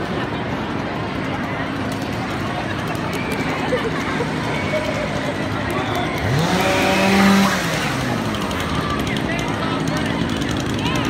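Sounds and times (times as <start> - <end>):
motor revving: 6.1 - 9.1.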